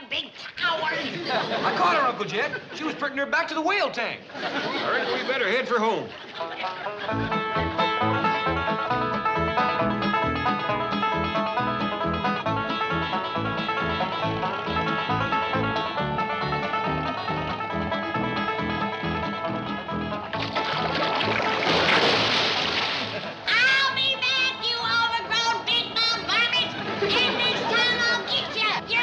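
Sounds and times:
fast picked banjo: 0:06.2 - 0:22.0, 0:25.6 - 0:29.0
plucked bass line: 0:06.5 - 0:23.5
splashing water: 0:20.3 - 0:23.5.

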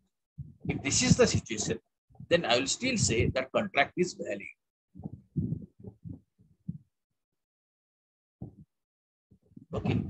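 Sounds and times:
man's voice in low fragments: 0:00.7 - 0:04.6.

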